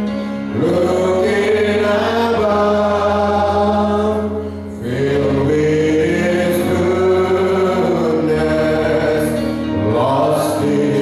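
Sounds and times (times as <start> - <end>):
low accompaniment: 0.0 - 11.0
group singing a hymn: 0.4 - 11.0.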